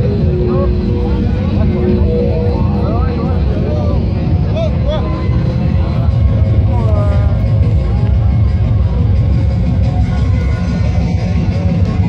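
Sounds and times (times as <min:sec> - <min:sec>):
bass-heavy techno music: 0:00.0 - 0:12.0
people calling and talking: 0:00.0 - 0:12.0.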